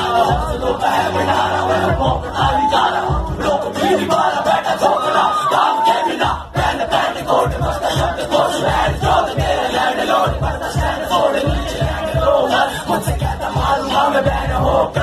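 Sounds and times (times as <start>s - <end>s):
bass-heavy hip-hop beat: 0.0s - 15.0s
crowd shouting along: 0.0s - 15.0s
person rapping into a microphone: 0.0s - 15.0s.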